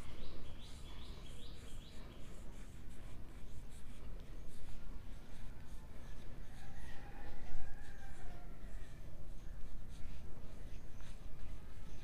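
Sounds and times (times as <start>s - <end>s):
chalk scratching on blackboard: 0.6s - 12.0s.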